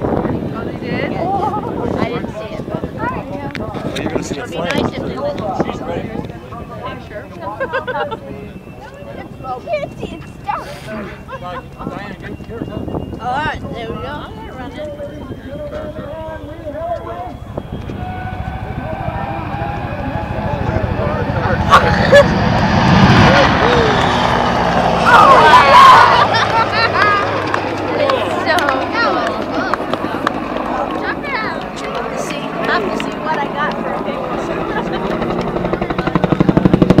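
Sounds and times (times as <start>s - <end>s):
faint turbine whine: 0.0s - 37.0s
helicopter rotor chopping: 0.0s - 37.0s.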